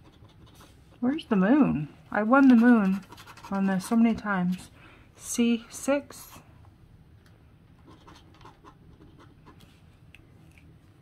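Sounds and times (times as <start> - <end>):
scratching a scratch ticket: 0.0 - 0.8, 2.2 - 4.6, 7.8 - 9.7.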